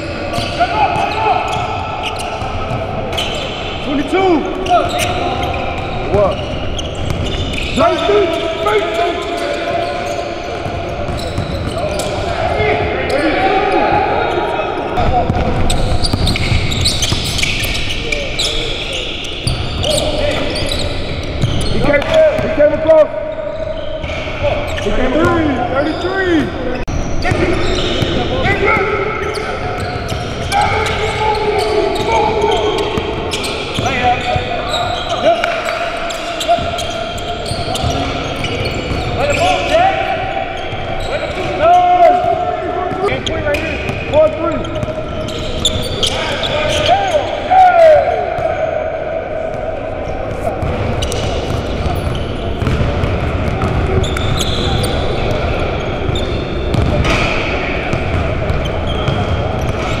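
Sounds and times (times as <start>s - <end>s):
players calling out: 0.0s - 60.0s
sneakers squeaking: 0.0s - 60.0s
basketballs bouncing on hardwood: 50.3s - 54.4s, 56.7s - 57.2s.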